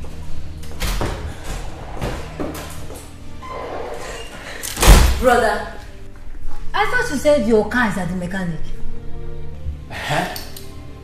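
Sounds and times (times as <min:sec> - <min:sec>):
door slamming: 0:04.8 - 0:05.4.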